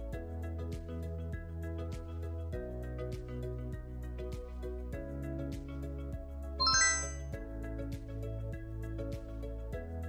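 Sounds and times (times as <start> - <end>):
background music: 0.0 - 10.0
bright rising chime: 6.6 - 7.3.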